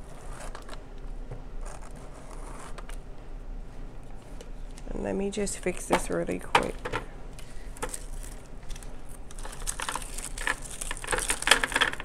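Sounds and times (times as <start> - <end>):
tape crinkling: 7.8 - 12.0.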